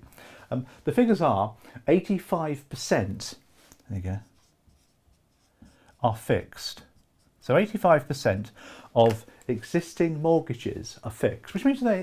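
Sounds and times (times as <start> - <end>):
marker writing on whiteboard: 4.1 - 8.2.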